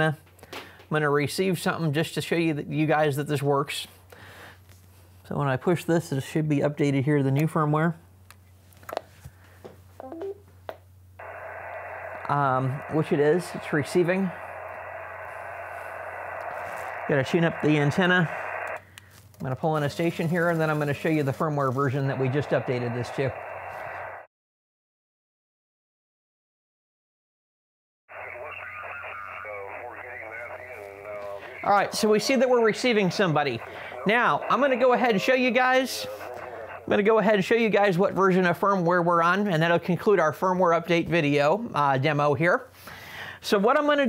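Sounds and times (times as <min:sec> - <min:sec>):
steady low hum: 0:00.1 - 0:24.3, 0:28.1 - 0:39.2
radio click: 0:11.2 - 0:19.5, 0:28.1 - 0:36.9.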